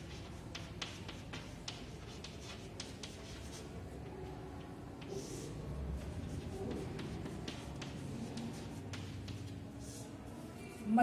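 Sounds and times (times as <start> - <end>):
chalk scratching on chalkboard: 0.0 - 11.0.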